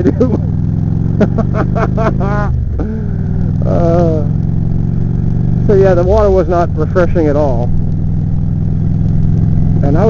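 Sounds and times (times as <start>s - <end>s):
man laughing: 0.0s - 4.3s
motorcycle engine running: 0.0s - 10.0s.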